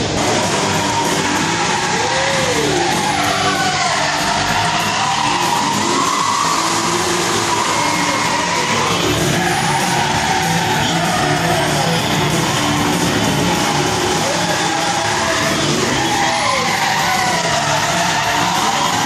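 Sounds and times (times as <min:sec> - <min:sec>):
engines revving: 0:00.0 - 0:19.0
music: 0:00.0 - 0:19.0
tyres squealing: 0:00.0 - 0:19.0.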